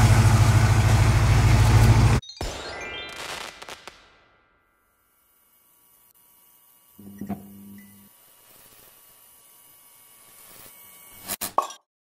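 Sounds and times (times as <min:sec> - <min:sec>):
faint electronic tones: 0:04.8 - 0:11.0
short steady buzz: 0:04.8 - 0:11.4.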